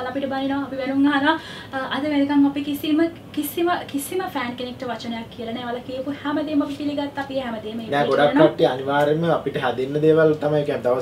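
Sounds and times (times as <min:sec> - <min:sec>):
woman talking: 0:00.0 - 0:08.6.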